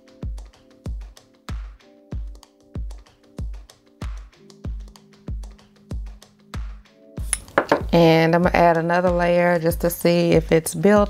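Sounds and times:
held keyboard chords: 0:00.0 - 0:08.0
kick drum beat: 0:00.2 - 0:09.2.

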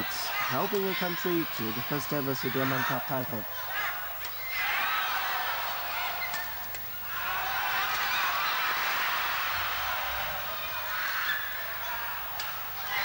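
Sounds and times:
crowd cheering and shouting: 0:00.0 - 0:13.0.

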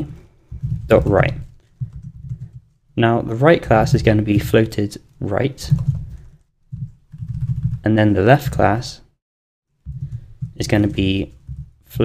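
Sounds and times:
typing on computer keyboard: 0:01.7 - 0:02.8, 0:05.7 - 0:07.8.

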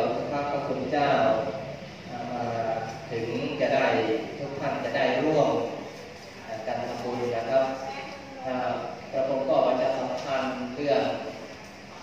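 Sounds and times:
man speaking into a microphone: 0:00.0 - 0:07.8.

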